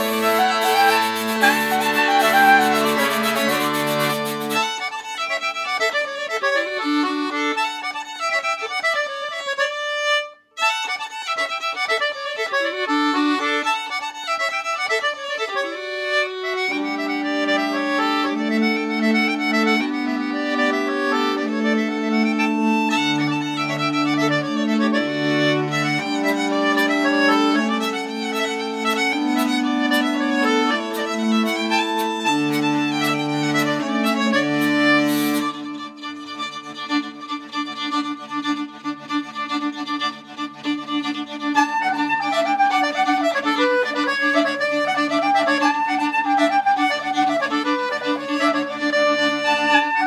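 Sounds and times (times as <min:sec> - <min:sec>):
folk band playing: 0:00.0 - 0:08.2, 0:15.6 - 0:50.0.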